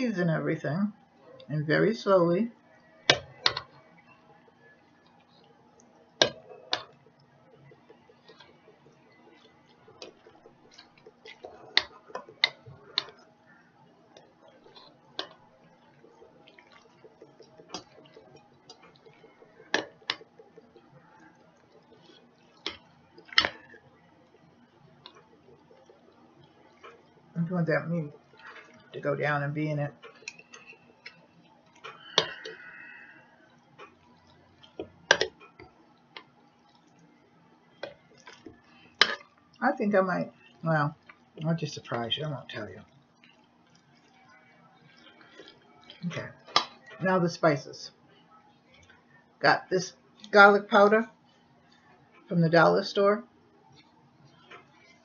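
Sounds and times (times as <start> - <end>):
faint steady hum: 0.0 - 55.0
thick mixture being stirred: 0.0 - 55.0.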